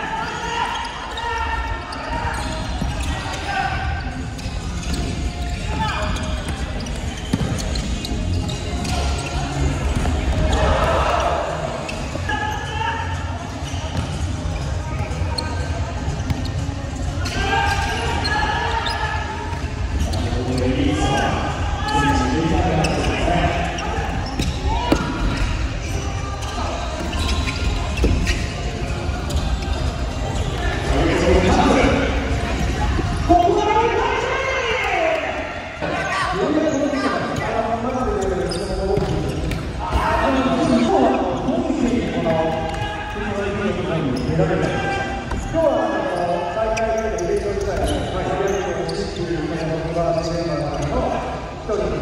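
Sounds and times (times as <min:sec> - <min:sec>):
crowd voices: 0:00.0 - 0:52.0
players shouting: 0:05.6 - 0:13.7.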